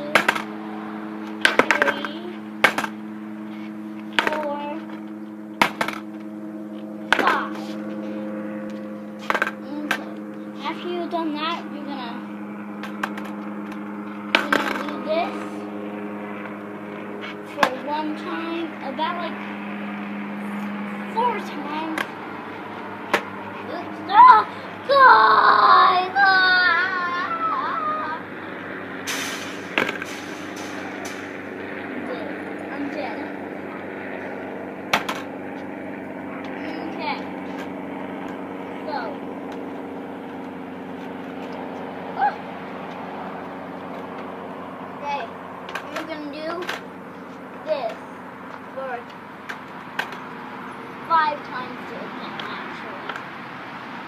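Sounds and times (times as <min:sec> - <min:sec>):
steady low hum: 0:00.0 - 0:54.0
skateboard slapping on concrete: 0:00.1 - 0:00.5, 0:01.4 - 0:03.0, 0:05.6 - 0:06.0, 0:07.1 - 0:07.6, 0:09.2 - 0:10.0, 0:14.3 - 0:15.0.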